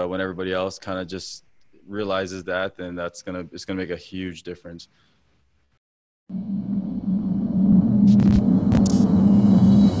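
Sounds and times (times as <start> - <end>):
low electronic drone: 6.3 - 10.0
glitchy static bursts: 8.1 - 9.1.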